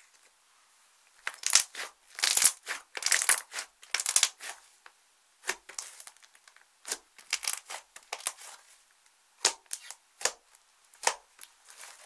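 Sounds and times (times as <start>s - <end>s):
slime crackling when kneaded: 1.2s - 4.6s, 5.4s - 8.6s.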